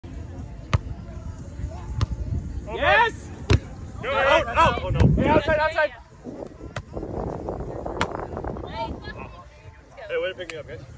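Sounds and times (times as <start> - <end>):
volleyball struck by hand: 8.0 - 8.2.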